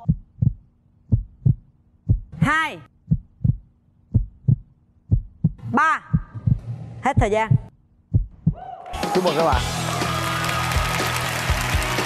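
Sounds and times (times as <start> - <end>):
heartbeat thumps: 0.0 - 8.7.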